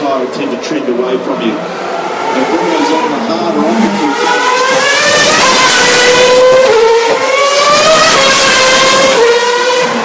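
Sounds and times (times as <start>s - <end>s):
racing car engine at high revs: 0.0s - 10.0s.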